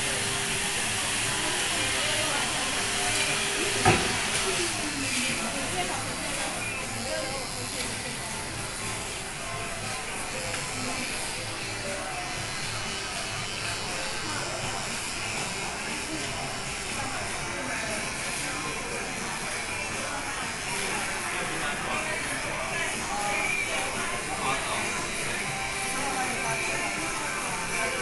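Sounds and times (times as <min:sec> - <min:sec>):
electric hair clippers buzzing: 0:00.0 - 0:28.0.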